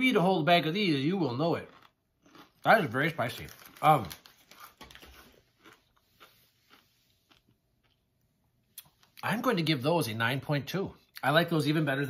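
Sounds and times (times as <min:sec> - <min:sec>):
chewing crunchy corn kernels: 0:01.3 - 0:08.1.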